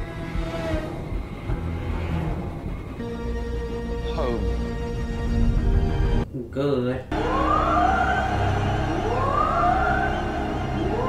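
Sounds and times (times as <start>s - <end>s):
low steady drone: 0.0s - 6.2s, 7.1s - 11.0s
rising siren-like glide: 7.1s - 11.0s.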